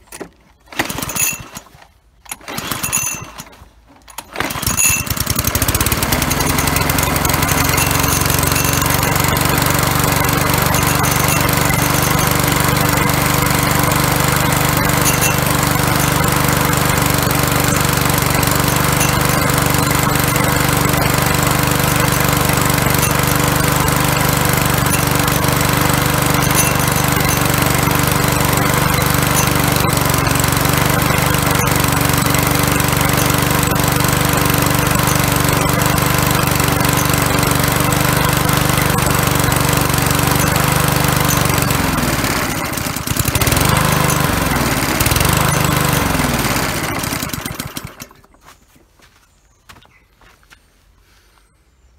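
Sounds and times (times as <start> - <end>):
lawnmower petrol engine running: 0.0 - 48.6.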